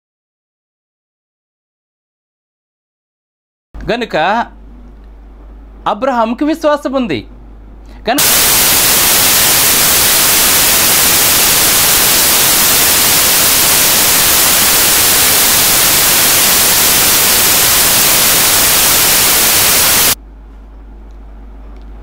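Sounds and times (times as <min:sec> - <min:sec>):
loud static hiss: 0:08.1 - 0:20.2.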